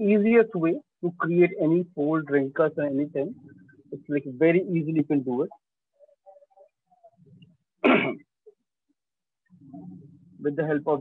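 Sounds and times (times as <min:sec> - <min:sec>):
man clearing his throat: 0:07.8 - 0:08.2.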